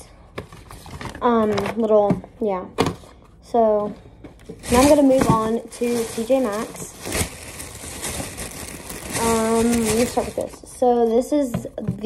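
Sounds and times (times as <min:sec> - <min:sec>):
plastic bag rustling: 0:04.5 - 0:10.8.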